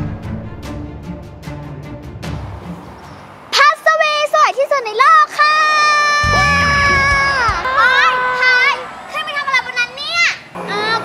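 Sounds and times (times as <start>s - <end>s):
background music: 0.0s - 3.4s, 6.2s - 7.9s.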